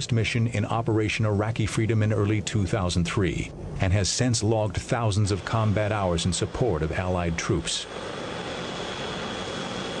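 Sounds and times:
high engine whine: 0.0 - 10.0
helicopter engines and rotor: 4.7 - 10.0.

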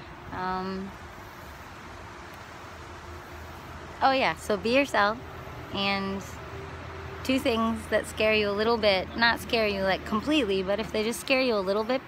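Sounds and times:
outdoor hiss: 0.0 - 11.8.

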